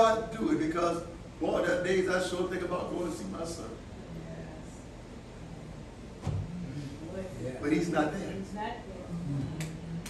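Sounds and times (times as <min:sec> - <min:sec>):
low room hum: 0:00.0 - 0:10.0
brief knock: 0:06.2 - 0:06.5
low voice-like murmur: 0:09.0 - 0:10.0.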